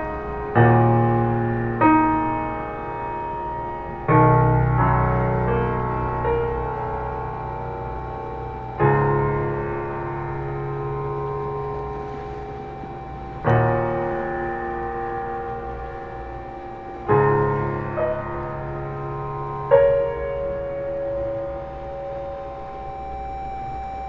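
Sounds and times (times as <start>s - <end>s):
slow piano chords: 0.0s - 24.0s.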